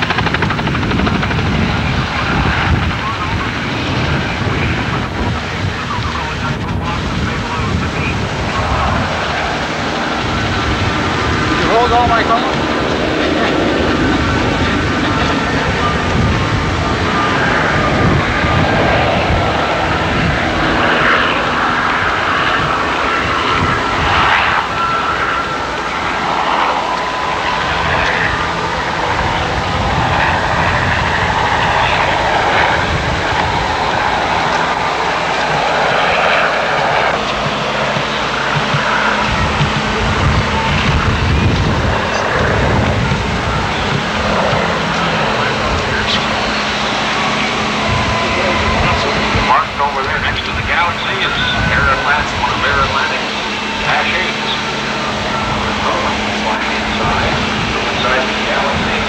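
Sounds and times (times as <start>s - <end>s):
aircraft engine: 0.0s - 59.0s
people's voices: 0.0s - 59.0s.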